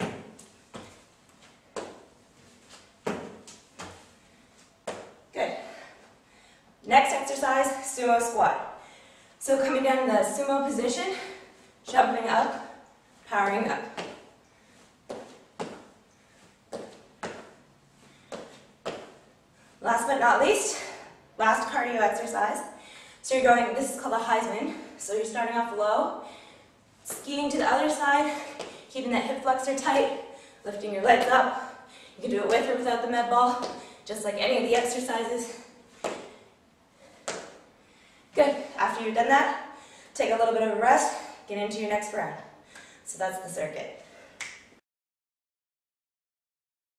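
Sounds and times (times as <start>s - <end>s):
sneakers landing on hardwood floor: 0.0s - 1.0s, 1.8s - 2.0s, 3.0s - 4.1s, 4.8s - 5.2s, 15.1s - 16.0s, 16.7s - 17.6s, 18.3s - 19.2s.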